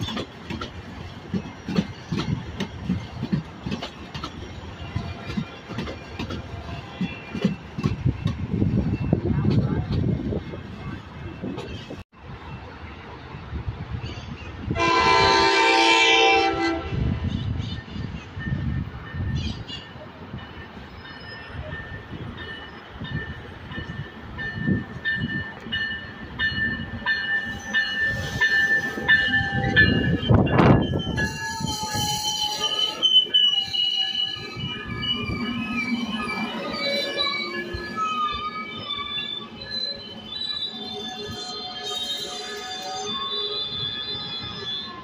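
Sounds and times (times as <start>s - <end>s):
high squeal of braking train: 0.0s - 3.2s, 4.2s - 45.0s
diesel locomotive rumbling: 0.0s - 44.7s
train cars rolling past: 0.0s - 45.0s
train horn blast: 14.7s - 17.4s.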